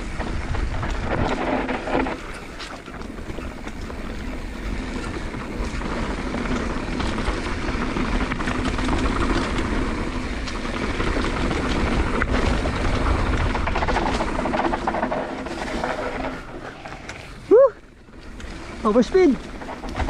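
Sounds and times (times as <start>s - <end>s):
bike rattling over bumps: 0.0s - 20.0s
tyres rumbling on dirt: 0.0s - 20.0s
wind buffeting microphone: 0.0s - 20.0s.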